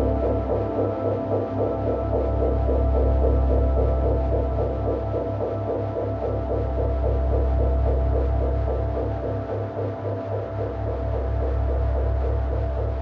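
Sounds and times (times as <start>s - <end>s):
ambient electronic drone: 0.0s - 13.0s.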